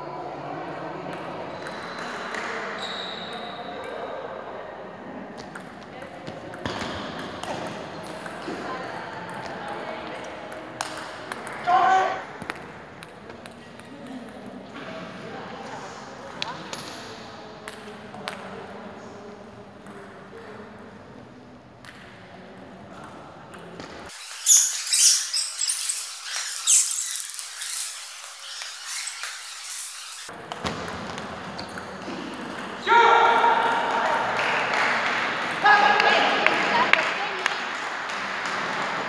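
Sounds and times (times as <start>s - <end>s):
voices in a hall: 0.0s - 39.0s
loud sharp thin sounds: 24.1s - 30.3s.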